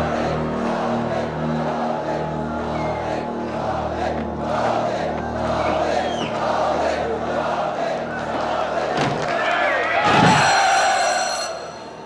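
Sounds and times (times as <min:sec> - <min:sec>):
film score music: 0:00.0 - 0:09.3
crowd shouting and cheering: 0:00.0 - 0:12.0.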